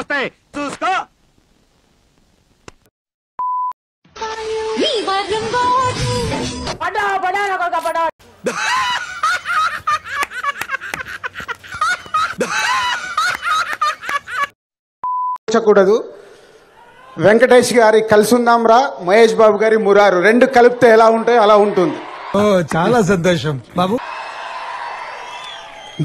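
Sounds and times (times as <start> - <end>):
censor bleep: 3.4 - 3.8, 15.0 - 15.4.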